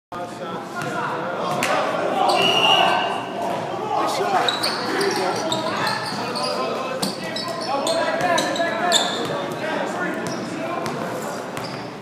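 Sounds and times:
players' voices: 0.2 - 12.0.

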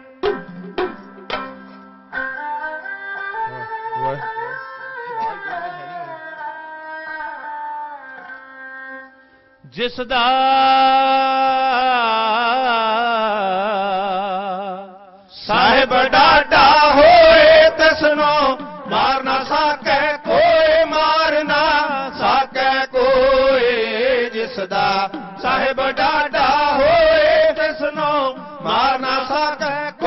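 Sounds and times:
hand drums: 0.0 - 2.4, 15.6 - 30.0
bowed string instrument: 0.0 - 9.5
men chanting: 15.4 - 30.0.

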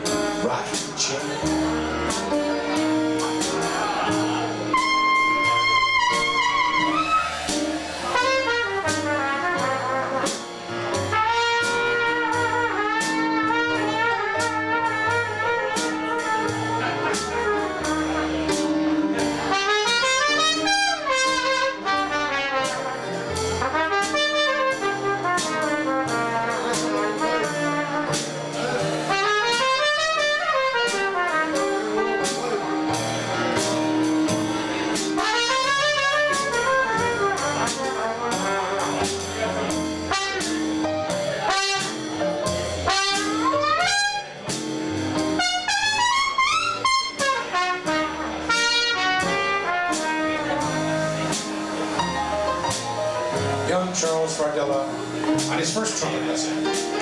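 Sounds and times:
drums keeping a beat: 0.0 - 57.0
trumpet playing jazz: 0.0 - 57.0
upright bass: 0.0 - 57.0.

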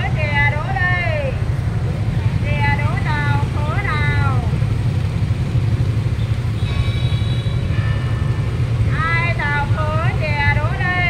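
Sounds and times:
scooter traffic rumble: 0.0 - 11.0.

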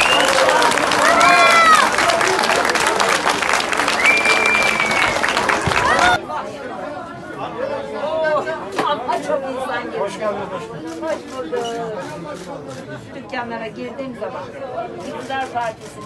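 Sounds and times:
crowd clapping and calling out: 0.0 - 6.2
quiet talk among people: 0.8 - 16.0.

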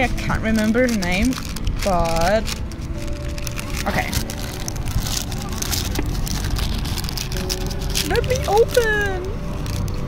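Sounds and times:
paper bag rustling and crinkling: 0.0 - 10.0
steady low rumble: 0.0 - 10.0.

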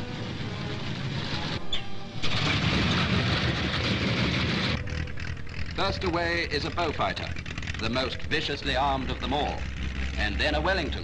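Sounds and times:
aircraft piston engines running: 0.0 - 11.0.

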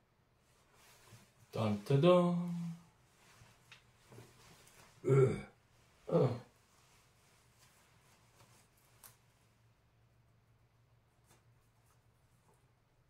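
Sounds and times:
fabric handling sounds: 0.4 - 5.0, 5.7 - 9.8.

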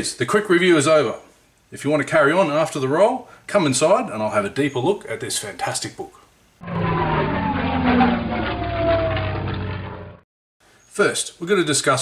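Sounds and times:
engine-like rumble falling in pitch: 6.6 - 10.2.

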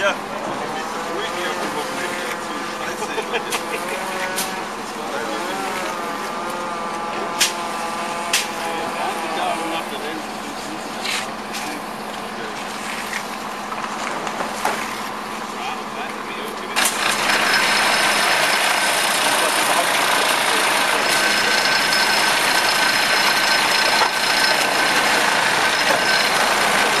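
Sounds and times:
vibrating screed motor hum: 0.2 - 15.8, 16.9 - 27.0.

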